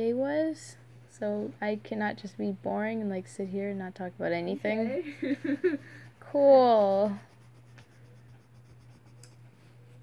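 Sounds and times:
pen scratching on paper: 6.1 - 9.4.

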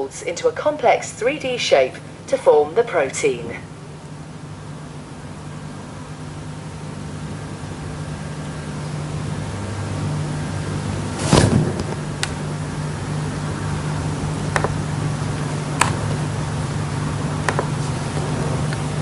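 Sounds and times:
low room hum: 0.0 - 19.0
dull thump: 11.2 - 12.0.

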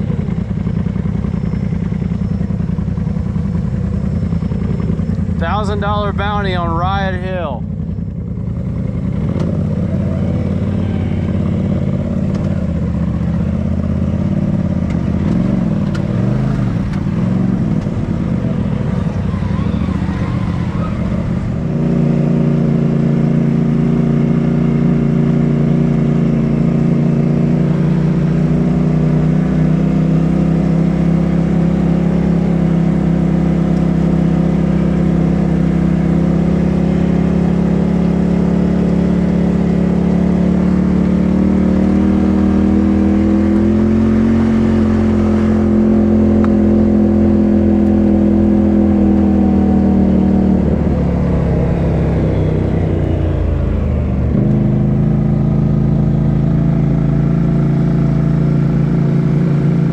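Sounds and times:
off-road vehicle engine cruising: 0.0 - 59.9.

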